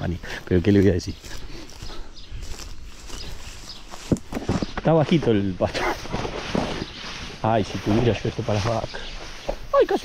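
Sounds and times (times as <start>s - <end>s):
footsteps through dry grass: 0.0s - 10.0s
stems rustling: 0.0s - 10.0s.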